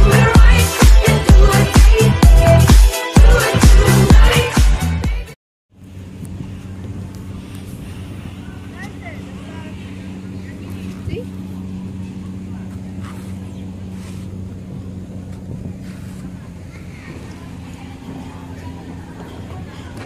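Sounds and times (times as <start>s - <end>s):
engine idling: 5.7s - 20.0s
faint voices: 5.8s - 20.0s.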